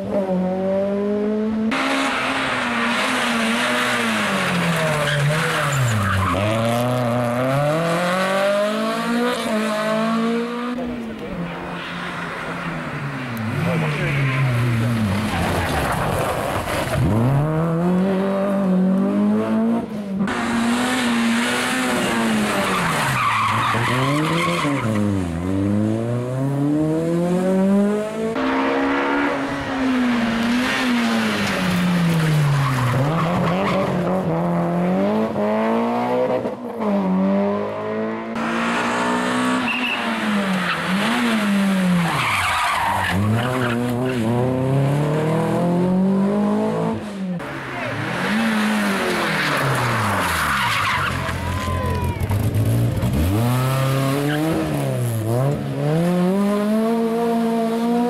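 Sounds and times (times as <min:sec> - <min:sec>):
rally car engines revving: 0:00.0 - 0:58.0
tyres squealing and skidding: 0:01.9 - 0:07.9, 0:11.4 - 0:17.3, 0:20.4 - 0:25.4, 0:29.4 - 0:34.2, 0:39.4 - 0:44.6, 0:47.4 - 0:54.9.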